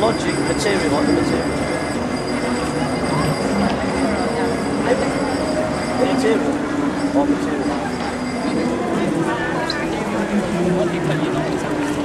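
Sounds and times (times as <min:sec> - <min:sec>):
murmur of voices: 0:00.0 - 0:12.0
tram humming on tracks: 0:00.0 - 0:12.0.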